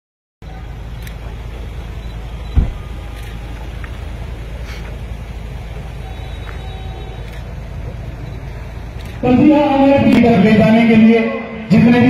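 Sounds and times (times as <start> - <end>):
vehicle engine idling: 0.4 - 12.0
heavy thump: 2.5 - 2.9.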